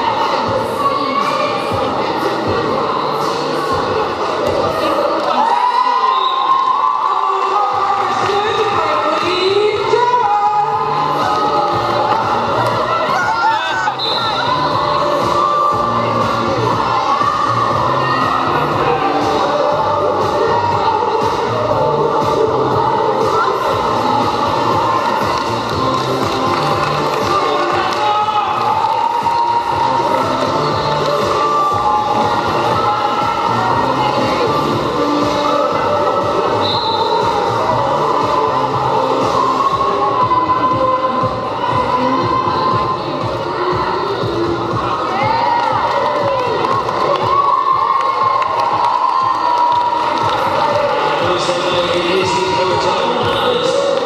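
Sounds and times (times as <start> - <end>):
crowd cheering and shouting: 0.0 - 54.0
music playing: 0.0 - 54.0.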